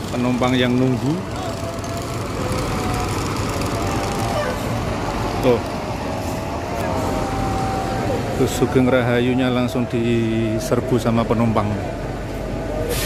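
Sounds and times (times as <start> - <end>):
crowded terminal noise: 0.0 - 13.0
diesel bus engine running: 0.0 - 13.0.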